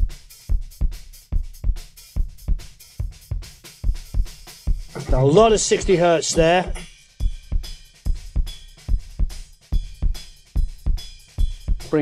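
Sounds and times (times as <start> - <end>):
acoustic drum kit groove: 0.0 - 12.0.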